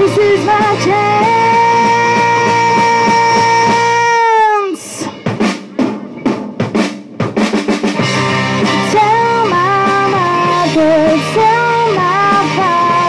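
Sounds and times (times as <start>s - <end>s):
rock band playing: 0.0s - 13.0s
drum fill on snare and toms: 5.0s - 13.0s.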